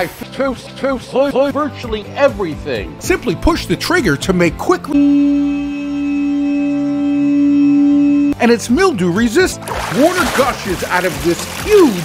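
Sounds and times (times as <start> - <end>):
buzzy electronic held vowel tone: 4.9 - 8.4.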